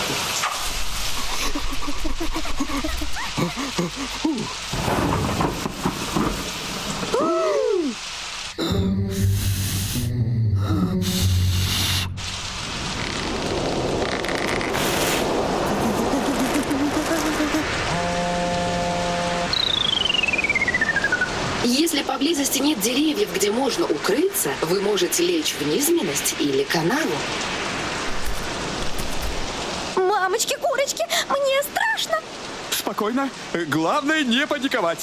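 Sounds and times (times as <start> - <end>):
cartoon heavy rain: 0.0 - 35.0
loud thunder crashes: 4.7 - 7.2
long falling whistle: 19.2 - 21.3.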